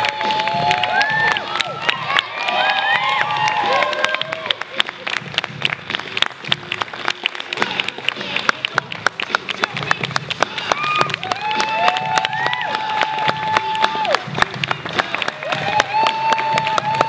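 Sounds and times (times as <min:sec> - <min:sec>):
high-pitched whoops: 0:00.0 - 0:04.6, 0:10.7 - 0:14.2, 0:15.4 - 0:17.0
audience clapping: 0:00.0 - 0:17.0.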